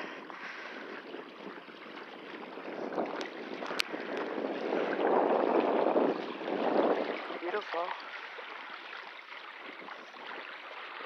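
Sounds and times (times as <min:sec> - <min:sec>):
waves lapping against rocks: 0:00.0 - 0:11.0.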